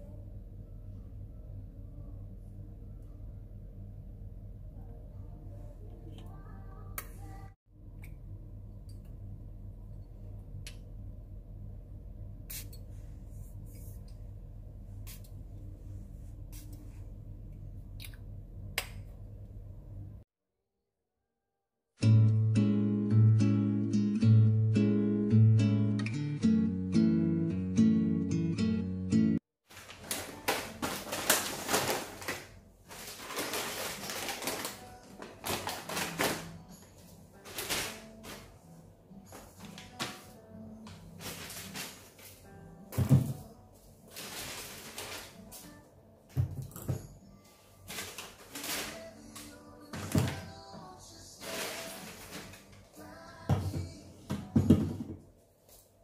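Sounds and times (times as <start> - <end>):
steady low hum: 0.0 - 20.2
perfume atomizer spraying: 12.5 - 12.8
acoustic guitar music: 22.0 - 29.4
plastic snack packets crinkling: 29.7 - 36.6.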